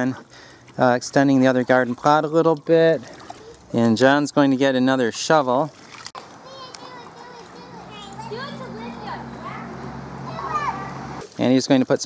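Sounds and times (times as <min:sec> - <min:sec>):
young children chattering: 0:06.3 - 0:11.2.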